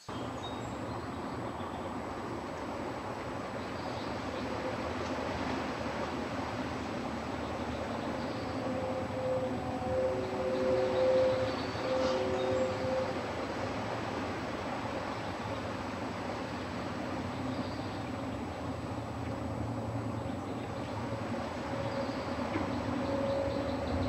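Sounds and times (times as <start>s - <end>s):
outdoor background rumble: 0.1s - 24.0s
distant horn-like chord: 3.8s - 18.3s, 20.6s - 24.0s.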